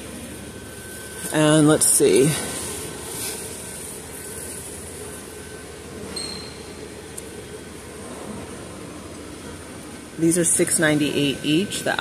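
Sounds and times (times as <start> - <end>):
store background noise: 0.0 - 12.0
faint high beep: 6.1 - 6.7.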